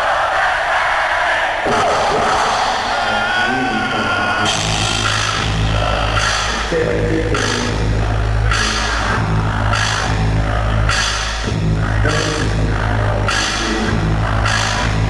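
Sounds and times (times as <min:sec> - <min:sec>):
heavy bass and drums: 0:04.4 - 0:15.0
live ska reggae band: 0:04.4 - 0:15.0.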